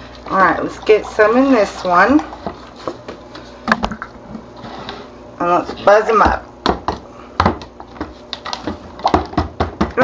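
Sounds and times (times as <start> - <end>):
blender knocking on plastic pitcher: 8.6 - 10.0.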